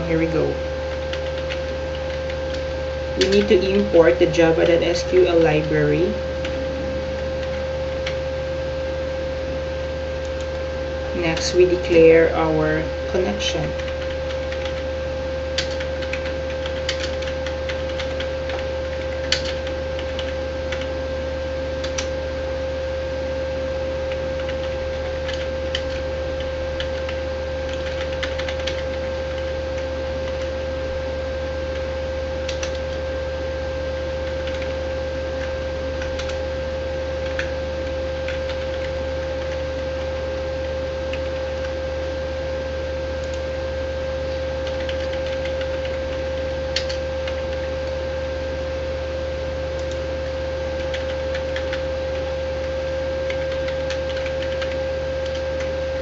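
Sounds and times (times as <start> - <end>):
keyboard typing: 0.0 - 8.3, 10.2 - 12.5, 13.1 - 14.9, 15.6 - 21.0, 21.8 - 22.1, 24.1 - 30.6, 32.5 - 33.0, 34.2 - 34.8, 35.4 - 36.4, 37.2 - 39.6, 41.1 - 41.8, 44.3 - 47.6, 49.8 - 55.7
steady tonal hum: 0.0 - 56.0.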